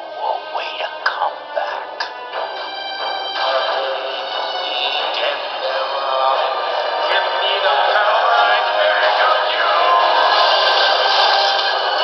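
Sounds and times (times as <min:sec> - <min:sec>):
horror film score on television: 0:00.0 - 0:12.0.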